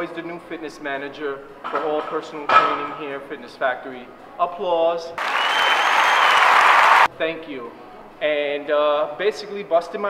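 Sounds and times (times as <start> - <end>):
crowd applause: 5.2 - 7.1.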